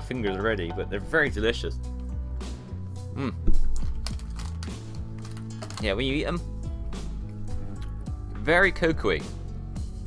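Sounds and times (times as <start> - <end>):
soft background music: 0.0 - 10.0
foil wrappers crinkling: 3.7 - 6.0.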